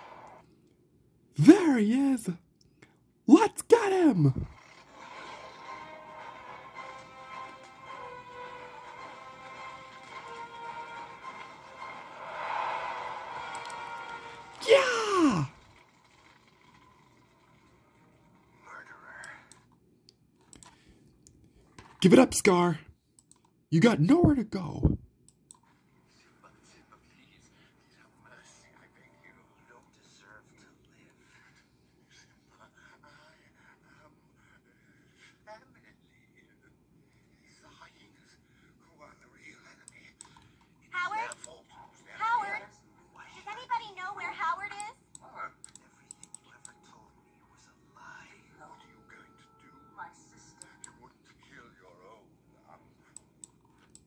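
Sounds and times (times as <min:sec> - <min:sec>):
film dialogue through speakers: 0:00.0 - 0:54.0
faint voice: 0:14.6 - 0:15.6
soft clicks: 0:19.5 - 0:21.4, 0:23.2 - 0:23.6.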